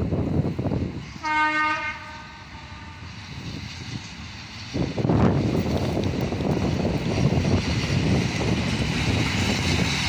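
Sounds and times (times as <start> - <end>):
train rumbling: 0.0 - 10.0.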